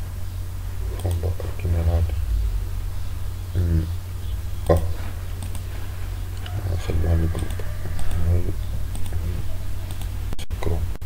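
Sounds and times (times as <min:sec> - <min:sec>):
man's low voice: 0:00.8 - 0:05.4, 0:06.4 - 0:09.8
computer keyboard keystrokes: 0:08.9 - 0:09.2, 0:09.8 - 0:10.1.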